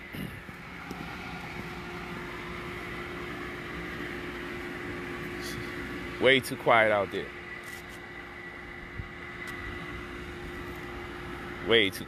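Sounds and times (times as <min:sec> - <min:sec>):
held hum: 0:00.0 - 0:06.3
steady mechanical drone: 0:00.0 - 0:12.0.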